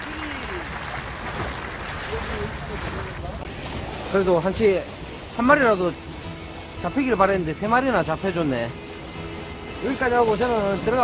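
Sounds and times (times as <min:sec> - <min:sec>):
sea washing against shore: 0:00.0 - 0:11.0.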